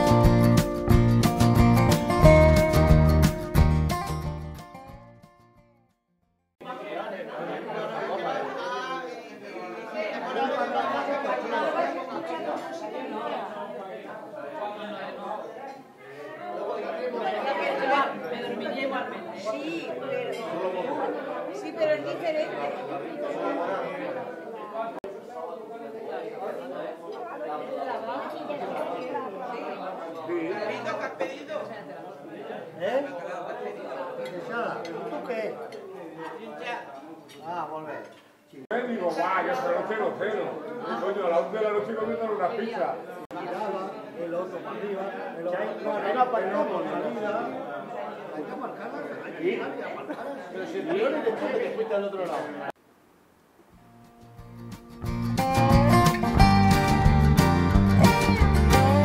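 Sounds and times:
crowd chatter in restaurant: 6.6s - 52.8s, 55.4s - 59.0s.

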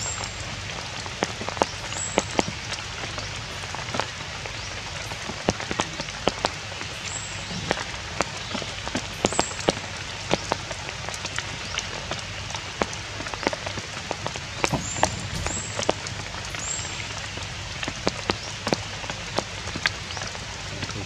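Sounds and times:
rain falling on leaves: 0.0s - 21.0s
sharp raindrop hits: 0.0s - 21.0s.

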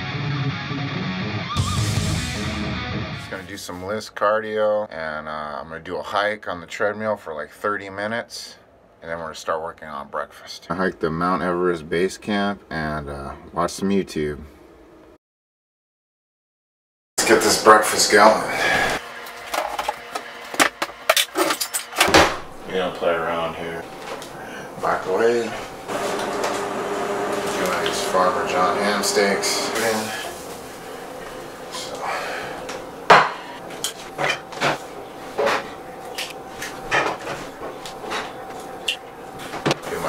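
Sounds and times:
plate set down on counter: 33.1s - 33.4s.

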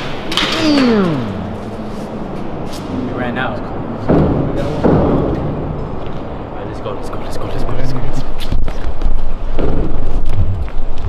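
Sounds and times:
indistinct voices: 0.4s - 2.1s.

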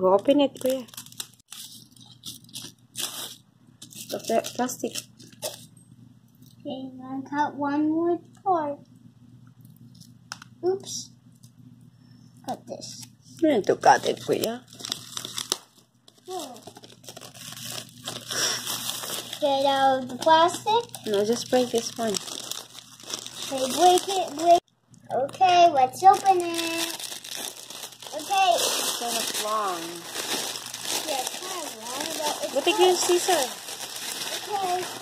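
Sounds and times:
packaging crinkling and crackling: 0.2s - 5.7s, 13.0s - 24.7s, 26.0s - 35.0s.

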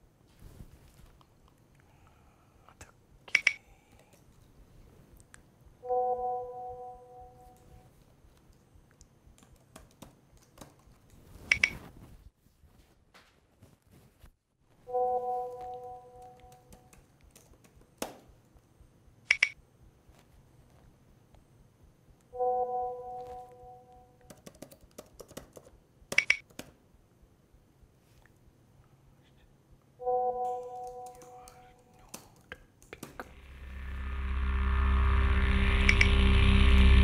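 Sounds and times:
soft electronic held tone: 5.8s - 7.8s, 14.9s - 16.5s, 22.4s - 24.2s, 33.3s - 37.0s
laptop keyboard tapping: 9.4s - 11.8s, 24.2s - 26.8s
sharp bright electronic click: 19.3s - 19.6s, 33.4s - 37.0s.

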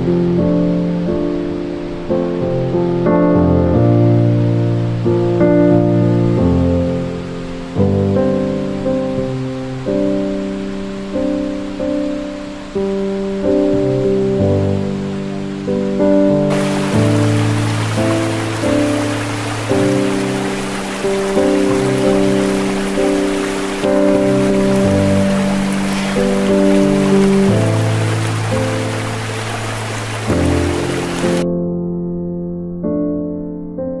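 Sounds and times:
electric piano chords: 12.9s - 34.0s
hiss of running water: 16.5s - 31.4s.

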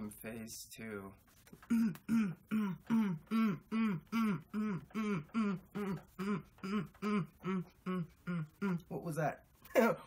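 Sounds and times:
person chanting a syllable: 1.7s - 8.9s.

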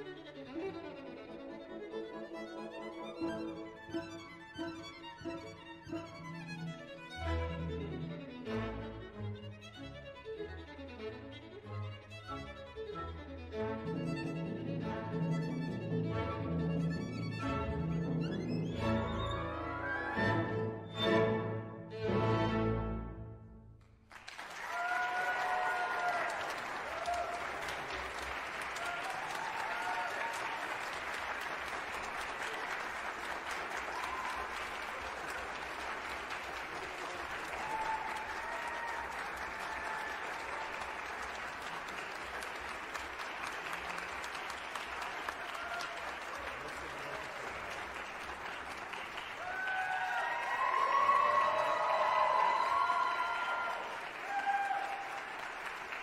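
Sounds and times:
audience applauding: 24.0s - 56.0s.

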